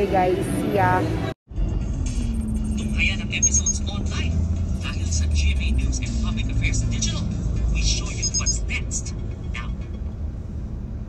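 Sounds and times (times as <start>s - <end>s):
car engine and road rumble: 0.0s - 11.0s
music playing in car: 0.2s - 11.0s.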